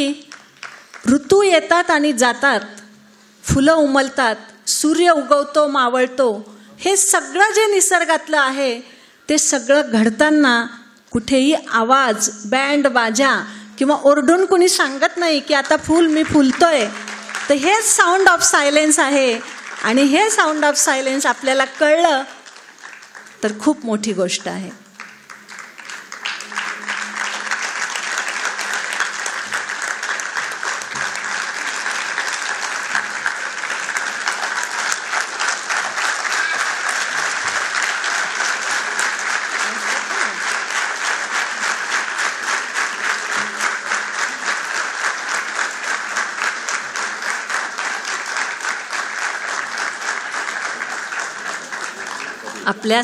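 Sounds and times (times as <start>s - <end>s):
audience applauding: 0.2s - 1.1s, 14.8s - 23.4s, 24.8s - 53.0s.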